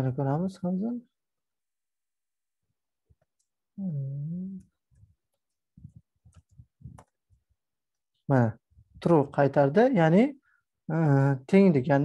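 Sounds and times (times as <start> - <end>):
man humming: 3.8 - 4.8.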